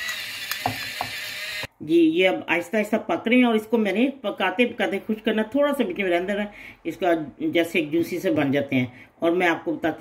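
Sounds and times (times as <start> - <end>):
pepper mill grinding: 0.0 - 1.7.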